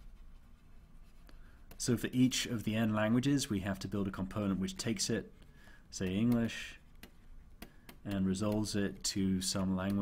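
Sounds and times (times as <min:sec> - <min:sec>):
stylus scratching on tablet: 0:00.0 - 0:03.0
man speaking: 0:01.8 - 0:06.9, 0:08.0 - 0:10.0.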